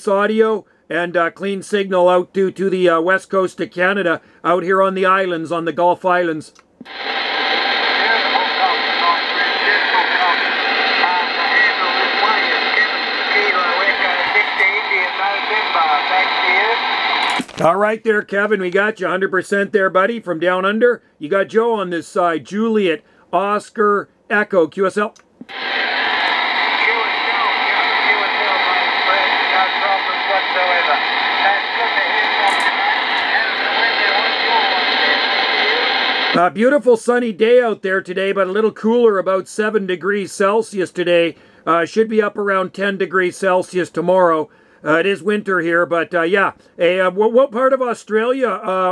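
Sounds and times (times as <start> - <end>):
radio static hiss: 6.8 - 19.2, 25.4 - 36.8
faint radio voices: 6.9 - 18.8, 25.5 - 36.5.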